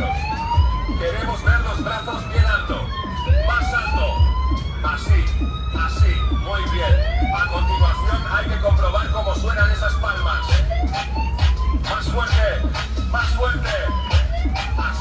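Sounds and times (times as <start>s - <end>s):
dance music with heavy kick drum: 0.0s - 15.0s
police siren effect wailing: 0.0s - 15.0s.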